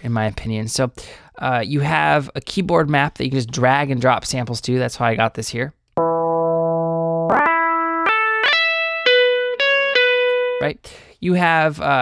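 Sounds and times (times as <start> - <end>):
electric guitar lead notes: 6.0 - 10.6.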